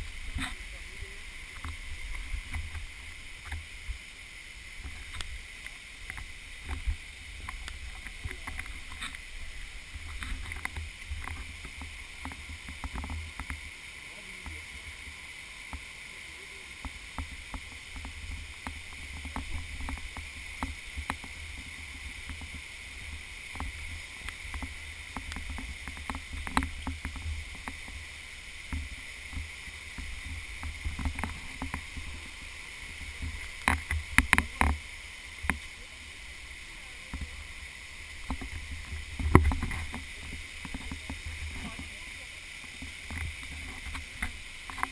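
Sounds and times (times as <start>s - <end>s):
handheld camera rumble: 0.0s - 13.6s, 16.8s - 42.0s, 42.6s - 44.9s
rocky stream rushing: 0.0s - 44.9s
footsteps and knocks on trail: 10.0s - 13.6s, 23.5s - 28.0s, 28.6s - 35.7s, 38.2s - 41.9s.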